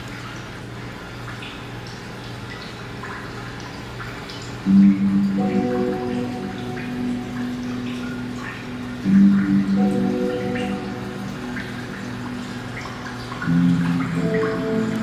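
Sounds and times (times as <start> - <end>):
water splashing into tank: 0.0 - 15.0
slow music of low chords: 4.6 - 15.0.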